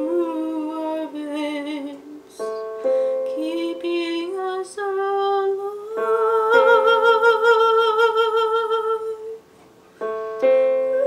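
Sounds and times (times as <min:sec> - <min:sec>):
woman singing: 0:00.0 - 0:09.4
piano chords on keyboard: 0:00.0 - 0:11.0.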